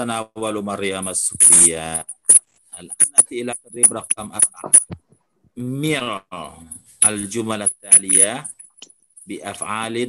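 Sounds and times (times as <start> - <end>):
person speaking: 0.0 - 8.5, 9.3 - 10.0.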